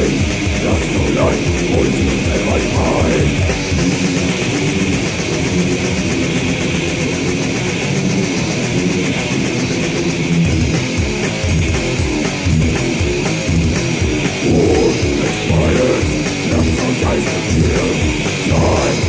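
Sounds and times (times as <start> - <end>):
bass: 0.0 - 19.0
distorted electric guitar riffing: 0.0 - 19.0
drums: 0.0 - 19.0.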